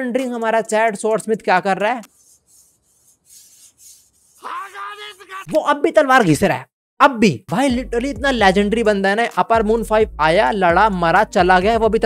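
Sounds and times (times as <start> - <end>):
blade strokes on whetstone: 2.1 - 4.5.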